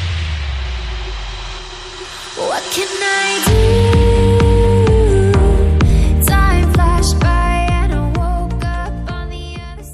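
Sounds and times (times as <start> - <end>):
transition whoosh effect: 0.0 - 4.4
background music: 2.0 - 9.9.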